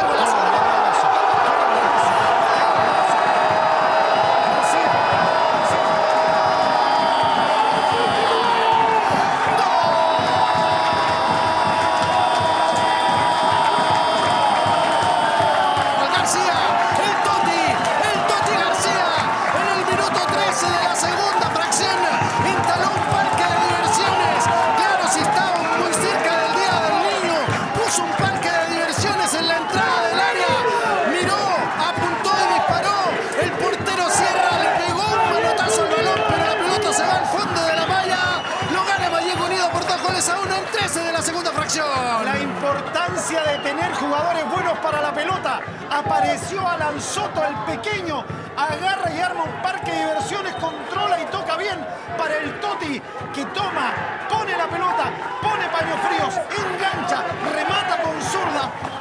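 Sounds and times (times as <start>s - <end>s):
commentator's drawn-out goal cry: 0.0s - 59.0s
excited shouting: 0.0s - 59.0s
fans cheering: 0.0s - 59.0s.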